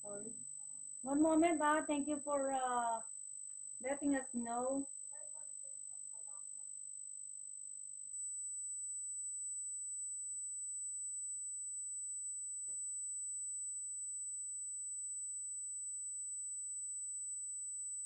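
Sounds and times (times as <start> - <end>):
faint low hum: 0.0 - 3.1, 3.8 - 6.8.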